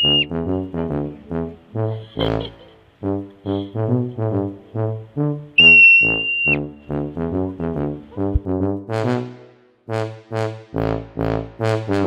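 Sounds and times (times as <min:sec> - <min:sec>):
marmot alarm whistle: 0:00.0 - 0:00.3, 0:05.6 - 0:06.7
tuba-led brass music: 0:00.0 - 0:12.0.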